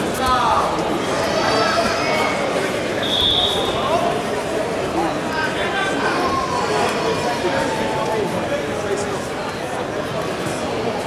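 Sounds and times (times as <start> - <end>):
chatter and calls of voices: 0.0 - 11.0.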